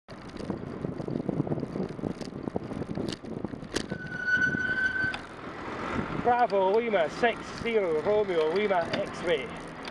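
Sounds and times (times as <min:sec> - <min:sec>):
road rumble: 0:00.1 - 0:09.9
wind buffeting microphone: 0:00.1 - 0:09.9
high-pitched squeal: 0:03.8 - 0:05.4.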